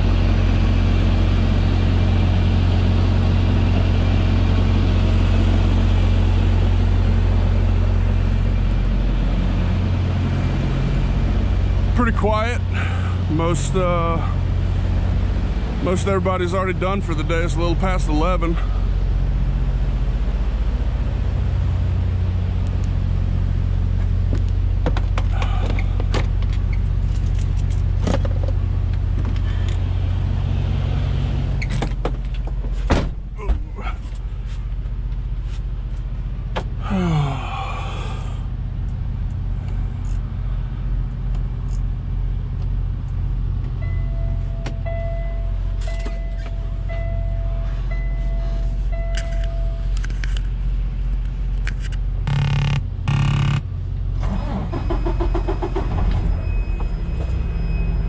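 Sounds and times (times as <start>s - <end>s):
diesel engine running: 0.0s - 58.0s
loud noise bursts: 52.3s - 53.6s
warning tone beeping: 52.3s - 53.7s.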